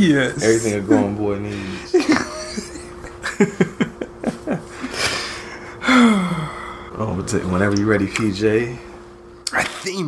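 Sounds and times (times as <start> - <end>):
man sighing: 4.8 - 6.9.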